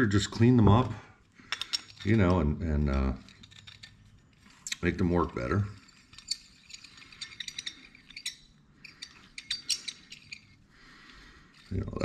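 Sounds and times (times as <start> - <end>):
metal bolts clicking and clinking: 1.5 - 2.4, 3.0 - 10.6.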